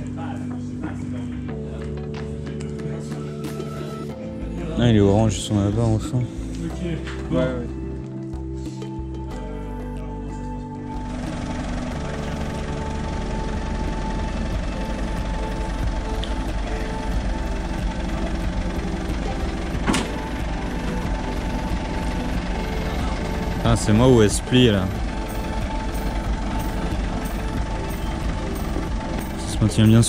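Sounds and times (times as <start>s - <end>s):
background music with held chords: 0.0s - 30.0s
diesel engine running: 10.8s - 30.0s.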